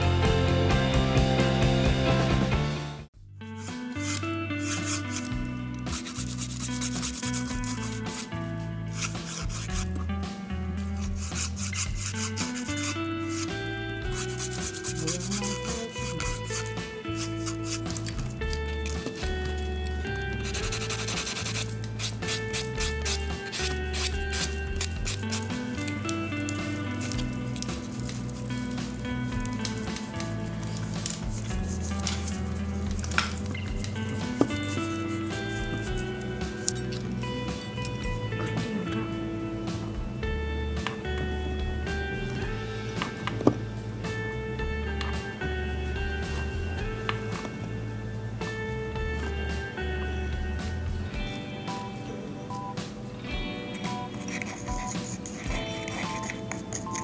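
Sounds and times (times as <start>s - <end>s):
background music with bass: 0.0s - 57.0s
nail file rubbing fingernail: 3.5s - 10.1s, 10.8s - 38.7s, 53.7s - 57.0s.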